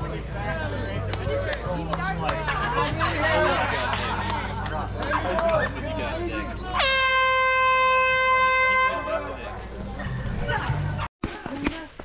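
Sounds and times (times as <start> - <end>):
crowd chatter: 0.0 - 12.0
air horn blast: 6.7 - 9.3.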